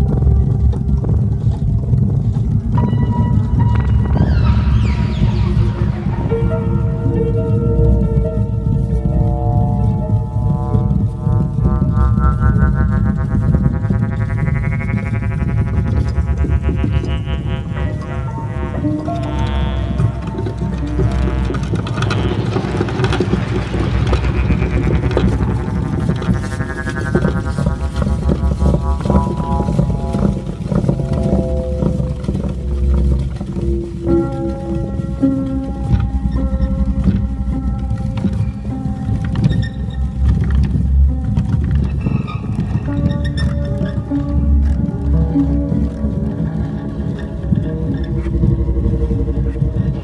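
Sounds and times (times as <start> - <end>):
clicking percussion: 0.0 - 50.0
deep bass: 0.0 - 50.0
held synth notes: 0.0 - 50.0
synth tones sweeping downward: 1.9 - 35.3
electronic techno music: 2.9 - 8.2, 8.8 - 34.4.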